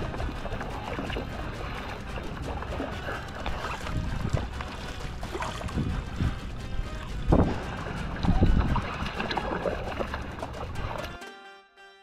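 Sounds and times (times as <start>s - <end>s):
wind on microphone: 0.0s - 11.0s
water sloshing and splashing: 0.0s - 11.2s
background music: 0.0s - 12.0s.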